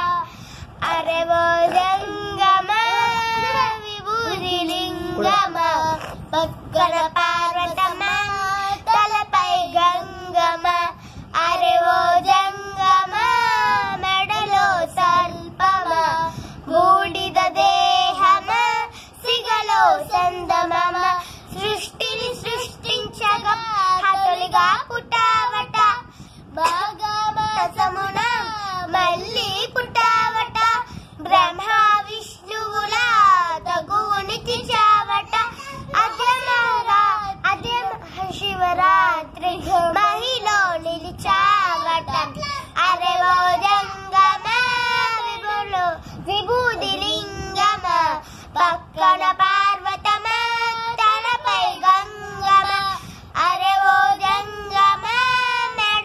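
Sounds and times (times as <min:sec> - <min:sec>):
girls singing unaccompanied: 0:00.0 - 0:56.0.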